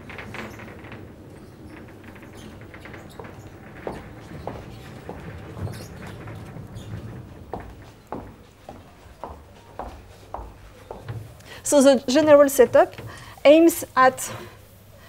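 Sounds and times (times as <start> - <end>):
footsteps on floor: 2.2 - 11.4.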